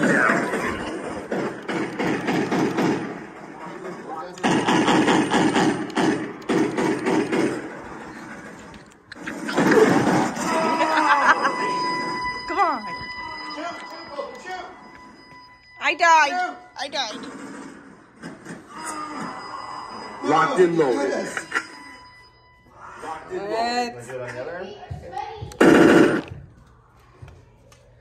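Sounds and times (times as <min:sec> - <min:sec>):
steady electronic tone: 0:10.3 - 0:18.1, 0:18.7 - 0:23.8.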